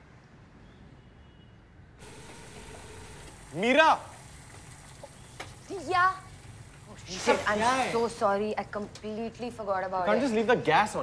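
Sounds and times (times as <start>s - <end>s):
pot boiling over hissing: 2.0s - 9.4s.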